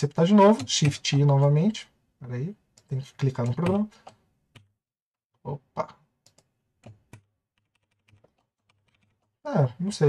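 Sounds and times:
computer keyboard keystrokes: 3.4s - 4.7s, 6.3s - 9.3s.

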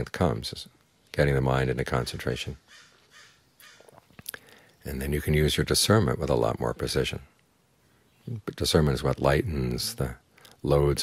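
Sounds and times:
man speaking: 0.0s - 2.6s, 4.8s - 7.3s, 8.3s - 11.0s
mouth clicks: 3.6s - 4.8s
faint breath: 4.2s - 4.8s, 10.3s - 10.6s.

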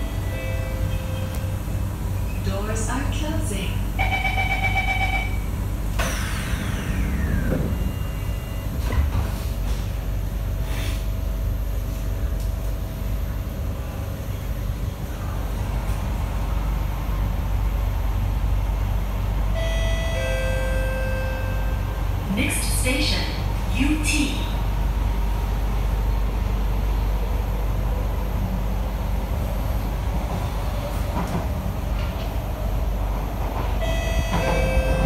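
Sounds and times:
train running rumble: 0.0s - 35.0s
door warning chime beeping: 4.0s - 5.4s
train doors sliding shut: 5.8s - 11.2s, 30.0s - 35.0s.

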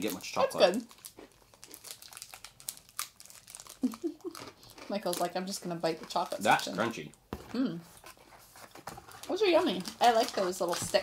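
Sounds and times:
foil snack packet crinkling: 0.0s - 7.1s, 9.1s - 11.0s.

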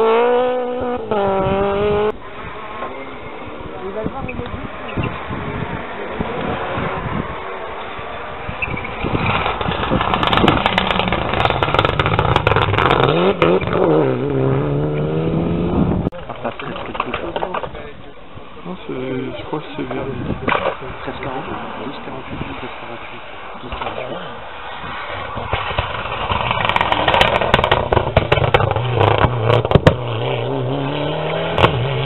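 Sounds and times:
rally car engine revving: 0.0s - 32.0s
sharp crackles: 8.5s - 13.9s, 16.2s - 17.9s, 20.4s - 30.1s.

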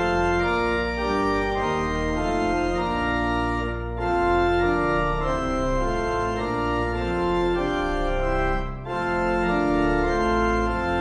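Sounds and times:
organ playing a hymn: 0.0s - 11.0s.

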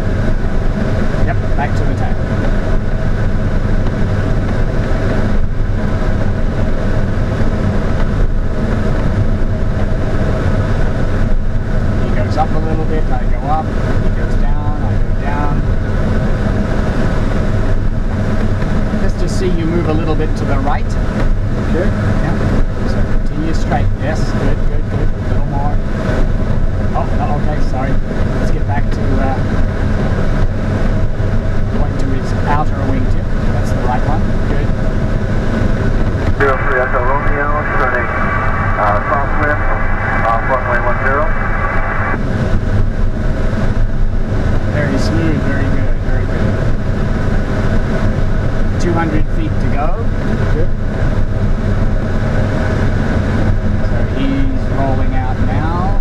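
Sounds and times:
plane engine running: 0.0s - 56.0s
airflow rushing over canopy: 34.2s - 48.8s.

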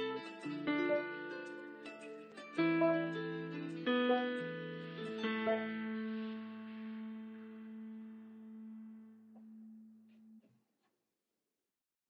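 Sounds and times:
digital piano bass notes: 2.6s - 10.1s.

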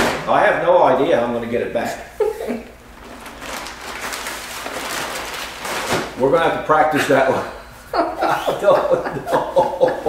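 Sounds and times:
nylon fabric rustling: 2.9s - 6.2s.

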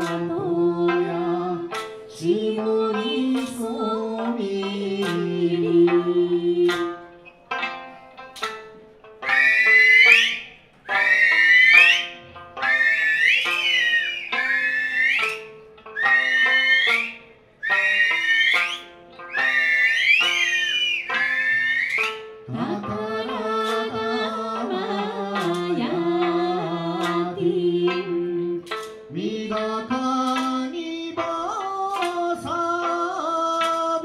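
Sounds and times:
plucked lute notes: 0.0s - 34.0s.

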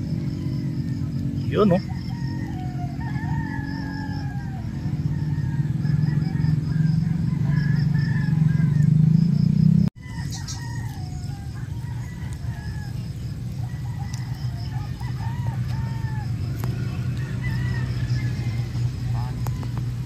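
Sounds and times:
roosters crowing: 0.0s - 20.0s.

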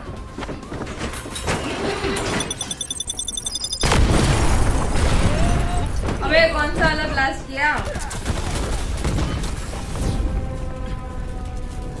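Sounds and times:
rapid gunfire: 7.8s - 9.9s.

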